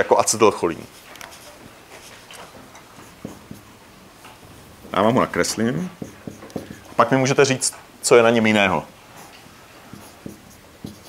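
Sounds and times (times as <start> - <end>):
marker writing on whiteboard: 0.8 - 7.8, 8.4 - 11.0
marker tip tapping: 3.2 - 3.7, 5.9 - 7.0, 9.9 - 11.0.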